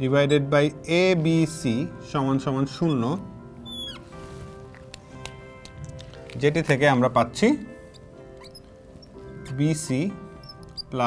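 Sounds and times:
soft music bed: 0.0 - 11.0
marker squeaking on glass board: 2.7 - 4.2, 6.6 - 11.0.

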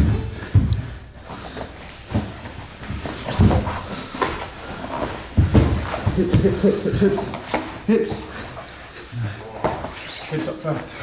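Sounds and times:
heavy bumps: 0.0 - 8.5
people grappling on a mat: 0.0 - 11.0.

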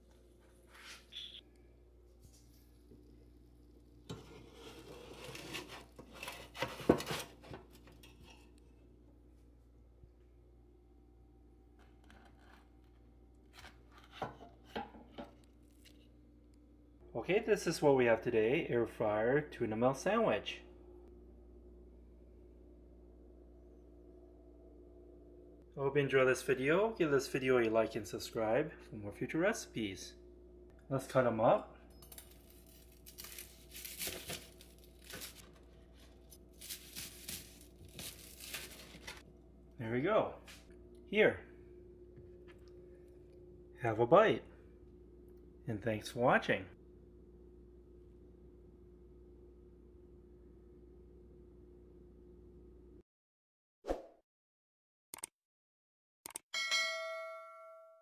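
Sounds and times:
low steady hum: 0.0 - 53.0
knife sawing through crunchy crust: 4.1 - 7.5.

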